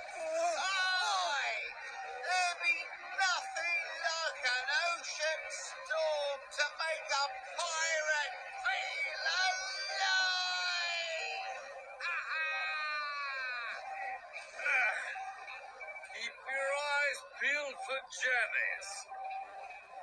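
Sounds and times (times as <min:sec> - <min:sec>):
altered cartoon voices warbling: 0:00.1 - 0:15.2.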